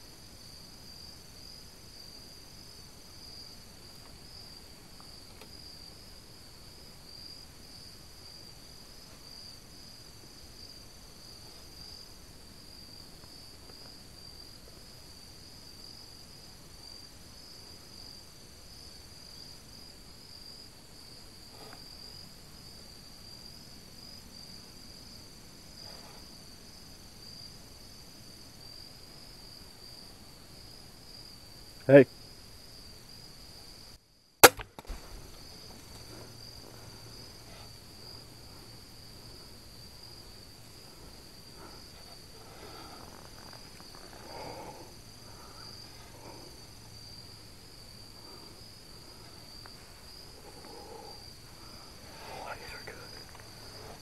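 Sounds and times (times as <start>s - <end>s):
crickets chirping: 0.0s - 54.0s
crossbow shot crack: 34.4s - 35.3s.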